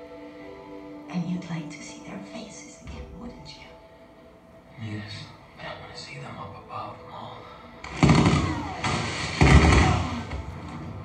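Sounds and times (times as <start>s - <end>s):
action film soundtrack: 0.0s - 11.0s
loud deep thuds: 7.9s - 10.6s.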